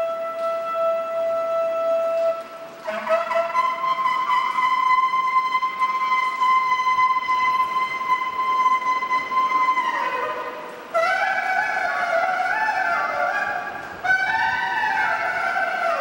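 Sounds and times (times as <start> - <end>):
wind instrument long high note: 0.0 - 16.0.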